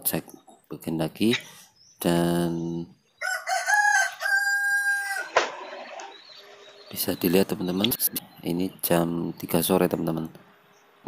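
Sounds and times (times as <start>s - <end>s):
rooster crowing: 3.2s - 6.1s.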